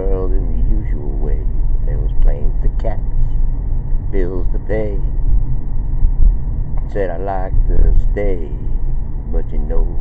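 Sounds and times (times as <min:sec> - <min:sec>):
man talking: 0:00.0 - 0:03.3, 0:04.2 - 0:05.1, 0:06.9 - 0:10.0
car cabin rumble: 0:00.0 - 0:10.0.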